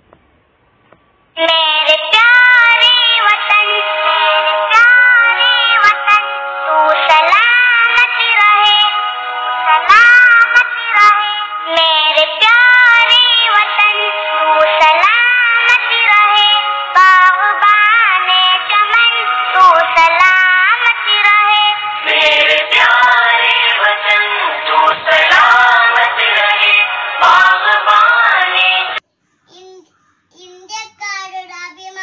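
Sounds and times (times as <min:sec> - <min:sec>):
child singing: 0:01.4 - 0:03.8, 0:09.8 - 0:14.0, 0:29.5 - 0:32.0
music: 0:01.4 - 0:29.0.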